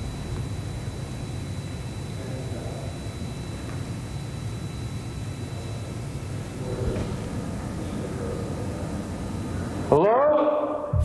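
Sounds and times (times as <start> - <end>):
microphone hiss and rumble: 0.0 - 4.5.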